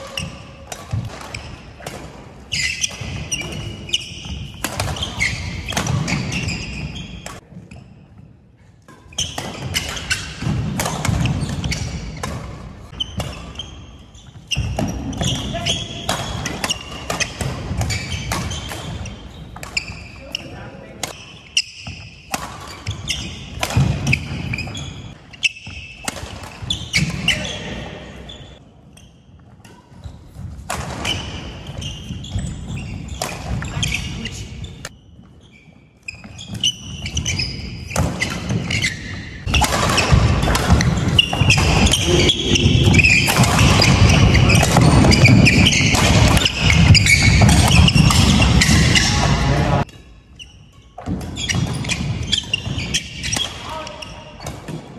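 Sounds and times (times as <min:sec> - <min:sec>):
rackets hitting shuttlecock: 0:00.0 - 0:07.9, 0:08.8 - 0:28.0, 0:29.4 - 0:35.0, 0:36.2 - 0:54.9.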